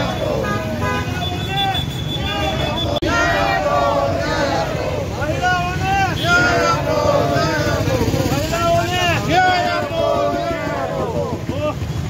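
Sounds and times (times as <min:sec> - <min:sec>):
crowd shouting or chanting: 0:00.0 - 0:11.9.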